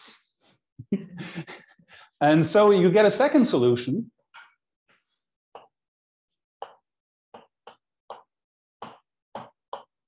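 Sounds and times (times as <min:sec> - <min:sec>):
chalk writing on blackboard: 0:06.6 - 0:06.8.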